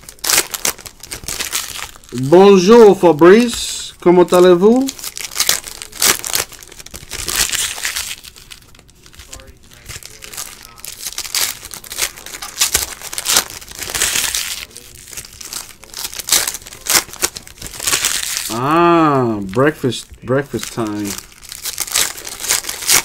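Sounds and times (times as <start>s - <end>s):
foil wrappers tearing and crinkling: 0.0s - 23.0s.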